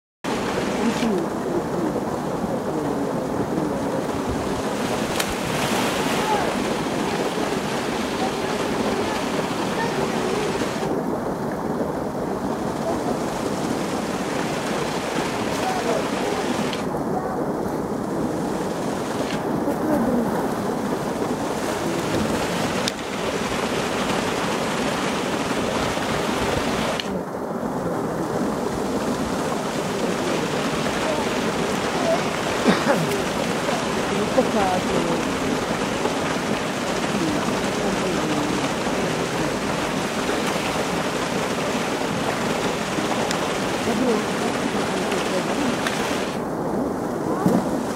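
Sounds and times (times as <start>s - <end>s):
pool water churning and lapping: 0.2s - 47.9s.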